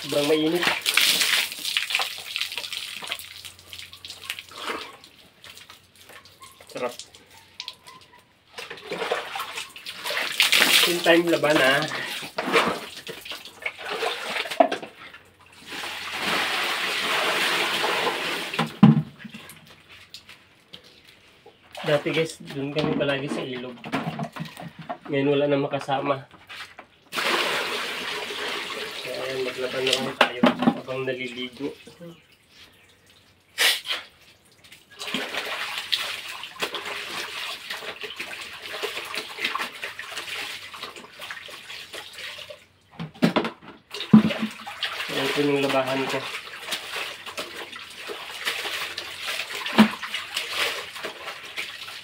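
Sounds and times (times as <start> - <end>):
water pouring from a bucket: 0.0 - 7.7, 8.5 - 20.4, 26.5 - 42.7, 43.9 - 52.0
water splashing in a basin: 0.0 - 20.4, 26.5 - 42.9, 43.8 - 52.0.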